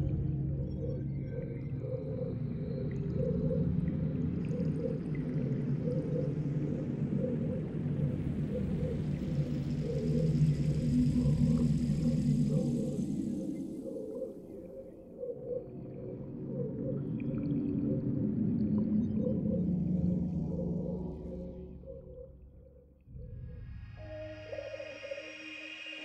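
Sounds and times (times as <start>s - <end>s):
low layered drone: 0.0s - 26.0s.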